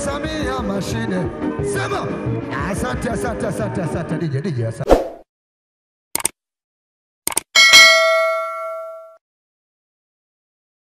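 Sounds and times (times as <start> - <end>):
double mouse click: 6.2 - 6.4, 7.3 - 7.5
notification bell ding: 7.6 - 9.2.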